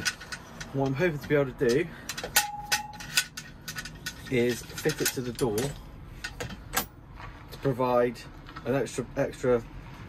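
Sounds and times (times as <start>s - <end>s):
metal lock bar clanking: 1.6s - 6.9s.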